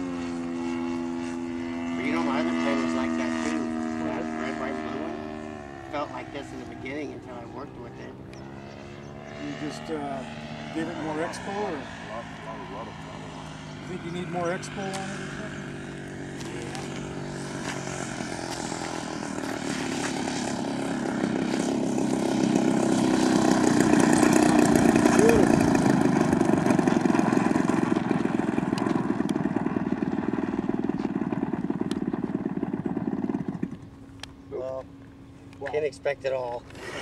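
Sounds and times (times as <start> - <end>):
model plane engine and propeller: 0.0 - 37.0.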